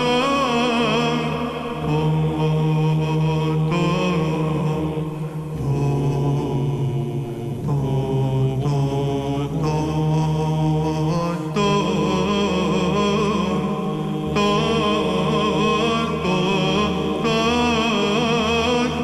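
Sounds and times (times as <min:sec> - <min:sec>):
man chanting wordless melismas: 0:00.0 - 0:19.0
sustained drone: 0:00.0 - 0:19.0.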